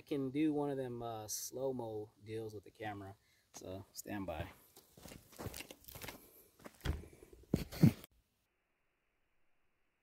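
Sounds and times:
footsteps on sandy dirt: 4.4s - 8.1s.

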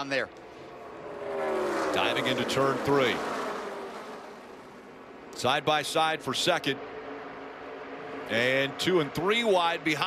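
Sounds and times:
distant race car engines buzzing: 0.0s - 10.0s.

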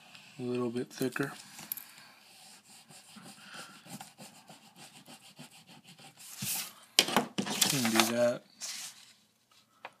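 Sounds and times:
pencil scratching on paper: 2.2s - 6.7s
paper rustling: 6.2s - 9.8s.

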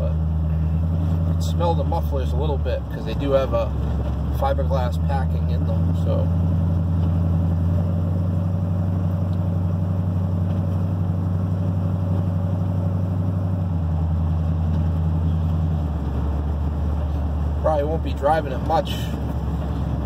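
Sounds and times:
pickup truck engine and exhaust growl: 0.0s - 20.0s.

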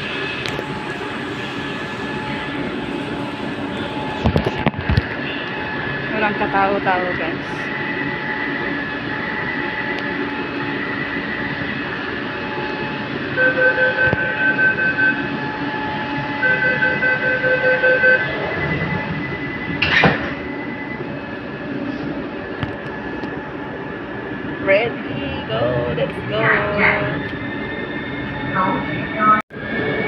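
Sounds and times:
train hum and whine: 0.0s - 30.0s.

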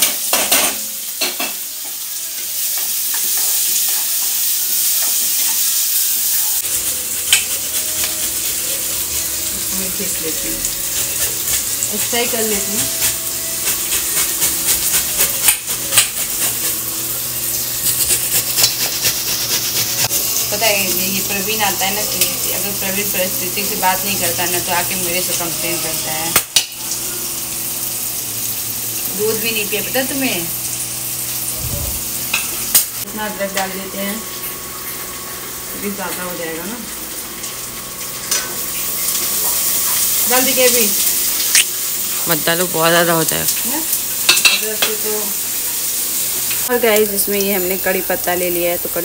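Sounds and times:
onion frying in hot oil: 0.0s - 49.0s.

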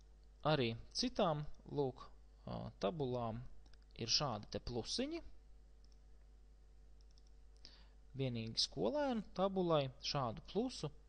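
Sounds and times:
low electrical hum: 0.0s - 11.0s
person speaking: 0.3s - 6.1s, 7.0s - 11.0s
computer mouse clicks: 3.6s - 4.5s, 5.8s - 6.1s, 7.0s - 7.7s.

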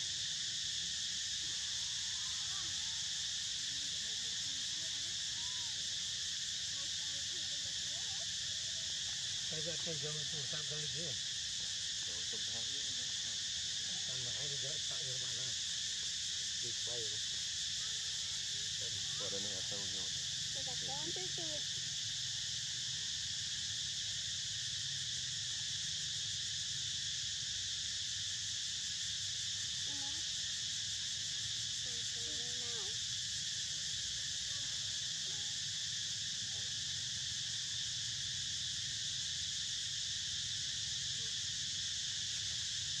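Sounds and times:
insects droning: 0.0s - 43.0s.

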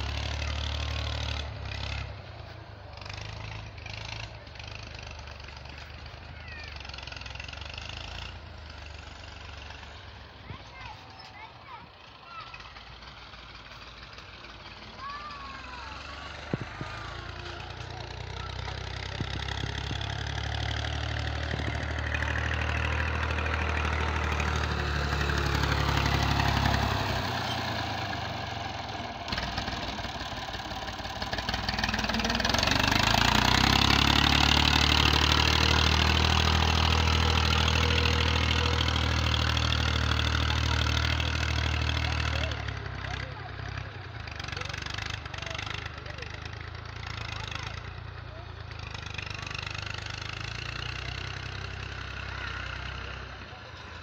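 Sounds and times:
tractor diesel engine under load: 0.0s - 54.0s.

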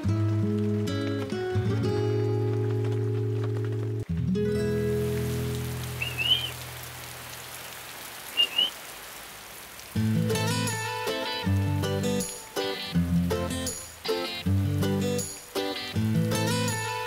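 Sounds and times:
steady rain falling: 0.0s - 17.0s
short high chirps: 6.0s - 6.6s, 8.4s - 8.7s
music with slow held chords: 10.0s - 17.0s.

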